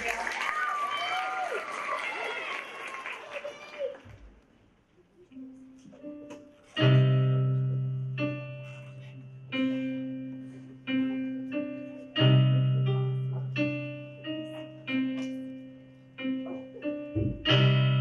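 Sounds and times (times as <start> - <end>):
applause: 0.0 - 4.3
digital keyboard chords: 5.4 - 18.0.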